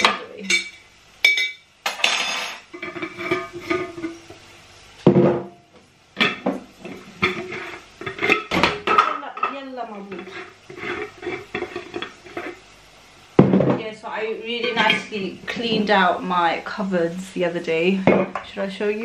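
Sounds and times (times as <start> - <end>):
glass jars and metal lids clinking: 0.0 - 4.1.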